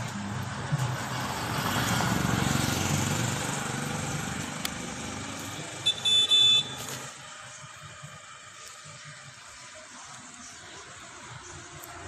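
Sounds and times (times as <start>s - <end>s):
vehicle passing: 0.0s - 7.7s
short high-pitched beeps: 5.8s - 6.8s.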